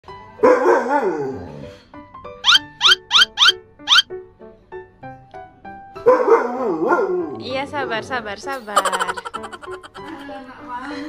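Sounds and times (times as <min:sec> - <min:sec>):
dog yips: 0:02.4 - 0:04.1.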